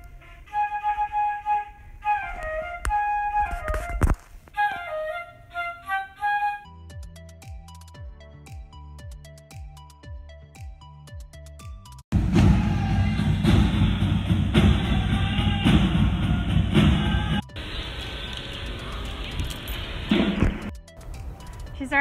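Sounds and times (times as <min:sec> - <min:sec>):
background music: 0:04.6 - 0:22.0
school band playing: 0:12.1 - 0:17.5.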